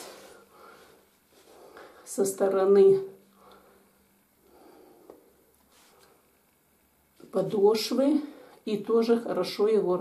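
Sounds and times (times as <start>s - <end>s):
faint low steady hum: 0.0s - 10.0s
soft faint rustling: 5.2s - 7.7s.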